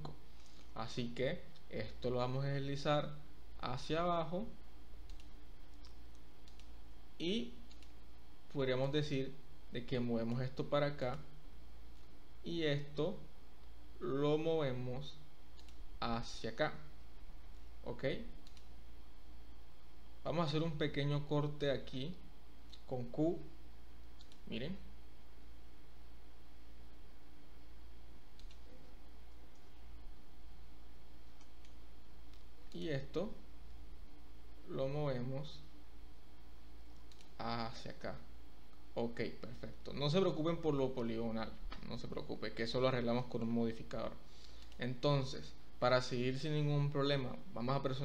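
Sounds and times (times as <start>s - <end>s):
low electrical hum: 0.0s - 48.0s
computer mouse clicks: 5.0s - 6.8s, 7.6s - 8.0s, 15.5s - 15.9s, 18.4s - 18.7s, 22.7s - 22.9s, 24.2s - 24.5s, 28.3s - 28.8s, 31.2s - 32.8s, 36.9s - 37.4s, 44.4s - 44.8s.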